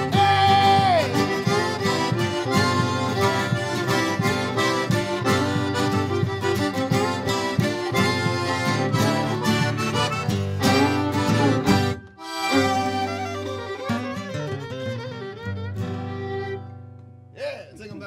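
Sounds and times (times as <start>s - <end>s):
button accordion: 0.0s - 16.8s
fiddle: 0.0s - 17.1s
acoustic guitar: 0.0s - 18.0s.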